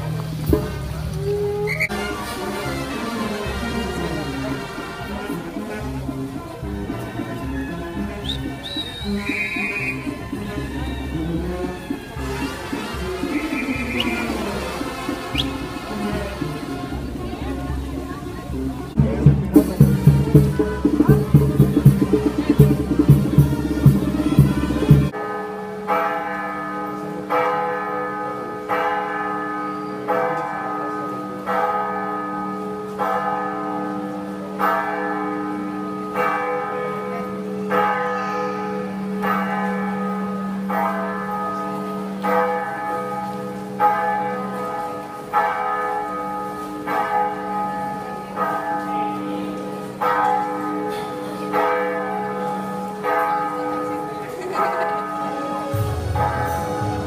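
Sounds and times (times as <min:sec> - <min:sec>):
church bell tolling: 0:11.0 - 0:57.0.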